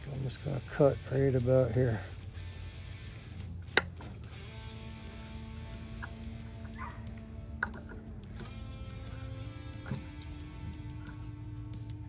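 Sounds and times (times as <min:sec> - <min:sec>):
soft guitar music: 0:00.0 - 0:12.0
low hum: 0:01.4 - 0:12.0.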